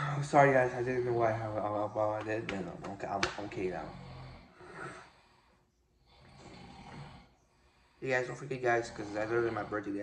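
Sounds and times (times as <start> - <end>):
person breathing softly: 4.4 - 10.0.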